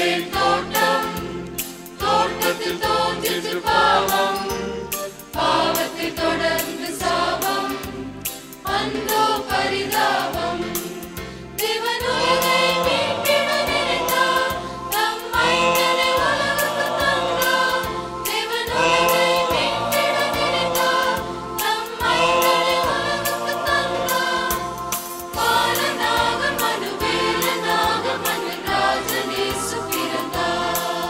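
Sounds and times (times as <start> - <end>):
choir singing: 0.0 - 4.7, 5.3 - 31.0
accompaniment with steady beat: 0.0 - 31.0.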